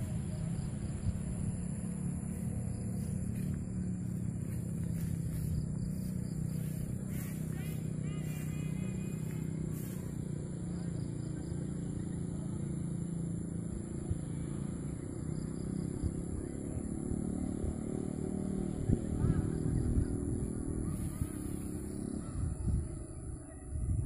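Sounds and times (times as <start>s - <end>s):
vehicle engine running: 0.0s - 24.0s
wind buffeting microphone: 18.7s - 24.0s.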